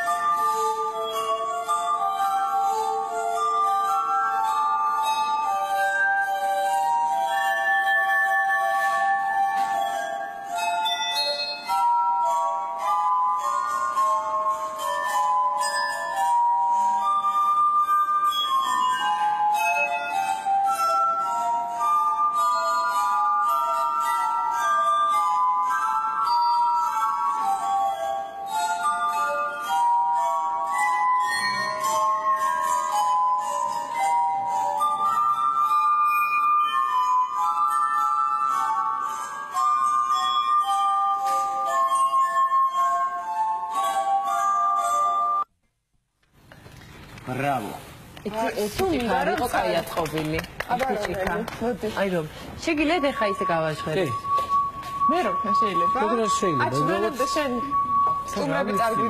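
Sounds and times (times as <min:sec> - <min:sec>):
glass harp melody: 0:00.0 - 0:45.5, 0:46.4 - 0:59.0.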